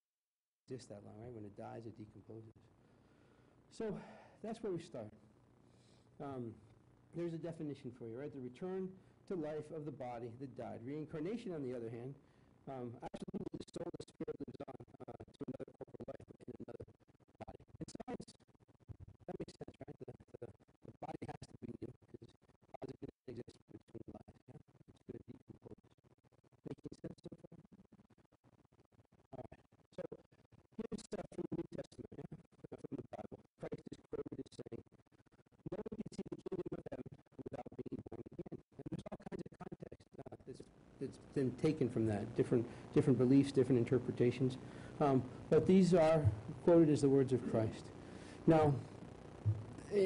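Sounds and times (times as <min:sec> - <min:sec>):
man speaking choppy stutter: 0:03.7 - 0:05.2, 0:06.2 - 0:06.6, 0:07.2 - 0:26.0, 0:26.6 - 0:28.0, 0:29.3 - 0:34.9, 0:35.6 - 0:50.0
man's stuttering chopped voice: 0:12.7 - 0:18.4, 0:35.7 - 0:47.8, 0:48.5 - 0:48.8.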